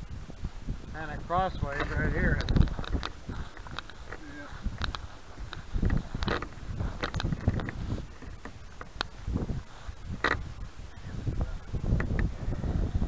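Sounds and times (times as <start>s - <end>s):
wind buffeting microphone: 0.0s - 13.0s
handling clicks and knocks: 1.7s - 9.1s.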